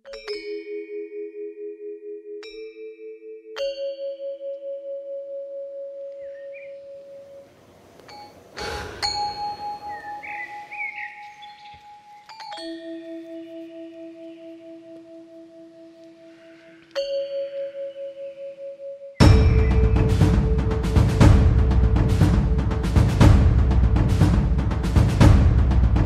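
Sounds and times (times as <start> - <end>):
bell chimes ringing: 8.1 - 21.8
short rushing swell: 8.4 - 10.7.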